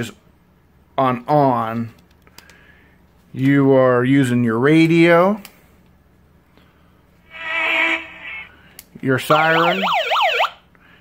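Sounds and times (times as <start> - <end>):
buzzy tone from small speaker: 7.2 - 8.6.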